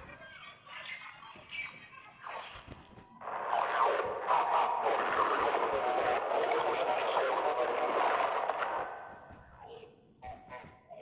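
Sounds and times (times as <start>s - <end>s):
garbled reversed noise wash: 3.3s - 8.9s.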